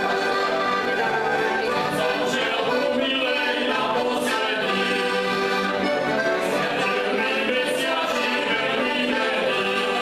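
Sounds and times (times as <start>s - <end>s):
button accordions playing folk tune: 0.0s - 10.0s
men singing in chorus: 1.9s - 5.6s, 6.5s - 10.0s.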